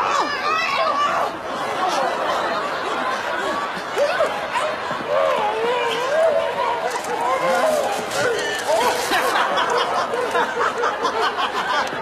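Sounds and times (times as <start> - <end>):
women shouting and chattering: 0.0 - 12.0.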